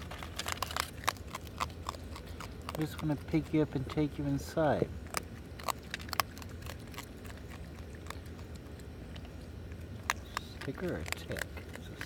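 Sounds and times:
raccoon crunching dry kibble: 0:00.0 - 0:12.0.

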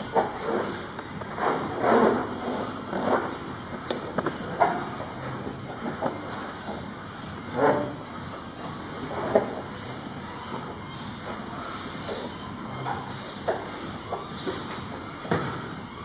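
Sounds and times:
scuffling on gym mats: 0:00.0 - 0:16.0
steady background hiss: 0:00.0 - 0:16.0.

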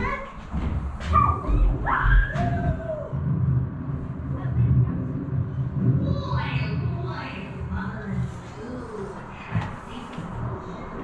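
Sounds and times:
low uneven rumble: 0:00.0 - 0:11.0
faint voices: 0:01.2 - 0:11.0.

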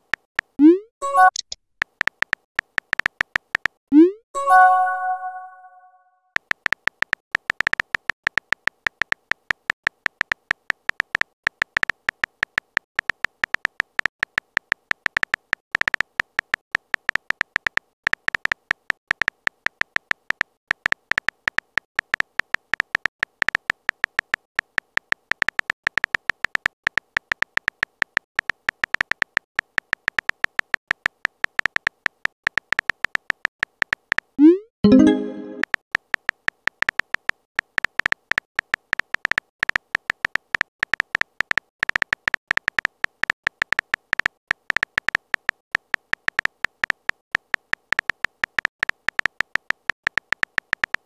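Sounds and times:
keyboard typing ticks: 0:00.0 - 0:51.0.

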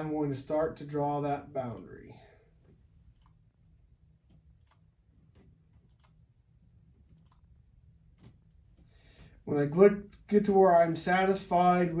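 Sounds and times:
faint computer mouse clicks: 0:03.1 - 0:03.4, 0:07.1 - 0:07.5.

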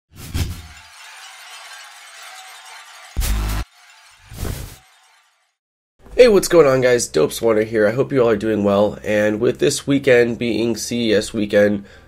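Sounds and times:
tinkling glass shards: 0:00.6 - 0:05.6.

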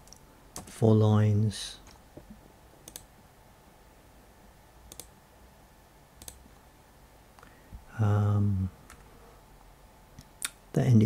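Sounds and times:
computer input clicks: 0:02.9 - 0:03.1, 0:04.9 - 0:05.1, 0:06.2 - 0:06.4.

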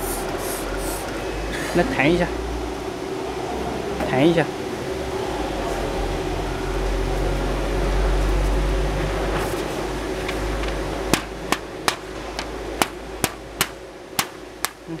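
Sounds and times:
steady low rumble: 0:00.0 - 0:15.0.

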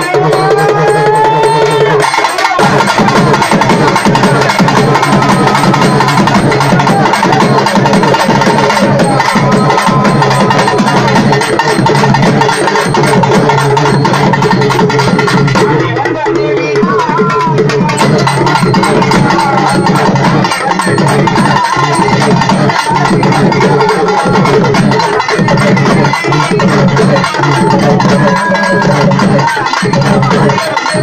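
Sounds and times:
drum ensemble playing: 0:00.0 - 0:31.0.

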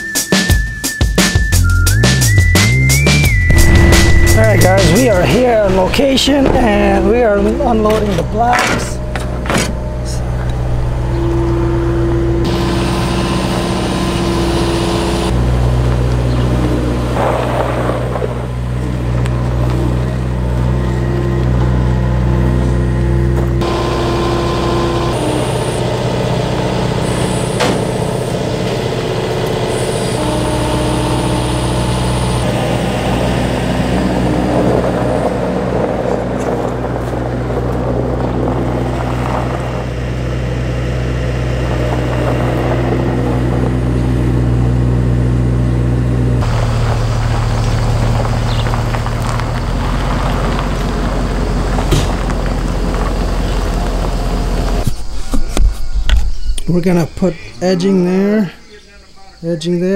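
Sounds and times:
loader engine running: 0:00.0 - 0:59.7.

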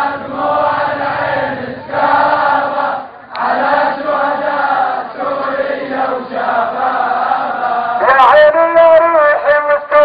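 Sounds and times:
crowd of men chanting: 0:00.0 - 0:08.2.

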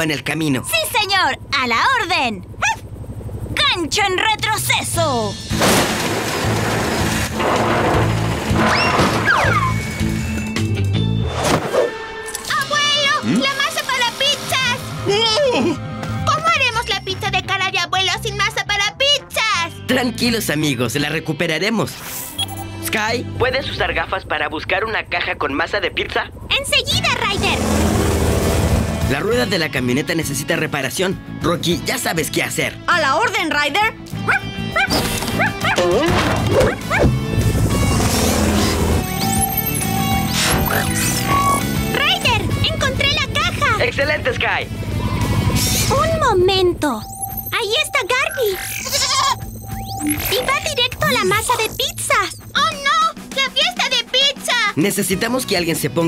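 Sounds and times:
cartoon dog yipping: 0:02.6 - 0:02.8, 0:08.7 - 0:09.8, 0:34.2 - 0:37.2, 0:47.5 - 0:53.1
background music: 0:04.6 - 0:25.6, 0:26.2 - 0:56.0
winch grinding: 0:05.4 - 0:10.9, 0:35.1 - 0:42.7
cartoon crash: 0:05.5 - 0:09.9.

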